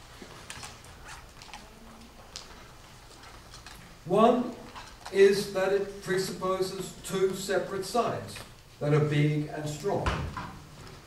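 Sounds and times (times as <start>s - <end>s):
soft rustles: 0.0s - 5.4s.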